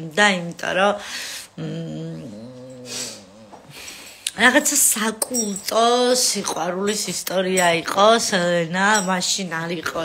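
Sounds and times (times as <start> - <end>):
woman humming: 1.6 - 4.0
breathy hiss: 2.4 - 4.3.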